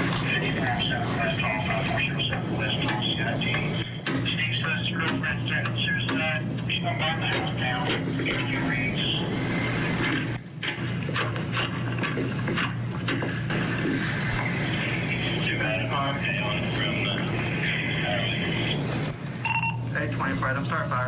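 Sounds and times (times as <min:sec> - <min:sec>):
indistinct voices: 0:00.0 - 0:10.4, 0:14.4 - 0:19.2
steady low hum: 0:00.0 - 0:21.0.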